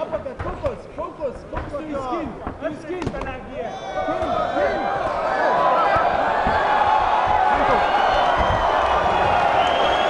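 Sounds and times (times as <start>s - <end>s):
crowd yelling and cheering: 3.6s - 10.0s.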